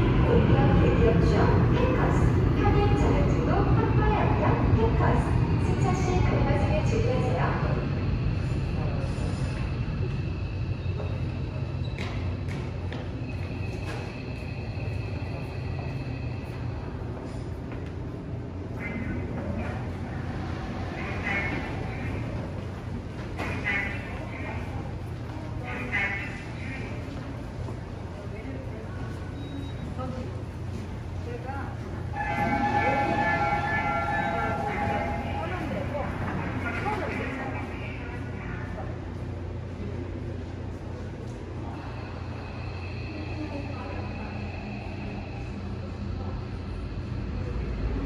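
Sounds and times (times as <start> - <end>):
approaching train rumble: 0.0 - 48.0
train braking rumble: 31.7 - 37.6, 41.6 - 48.0
train multi-tone horn: 32.1 - 35.6.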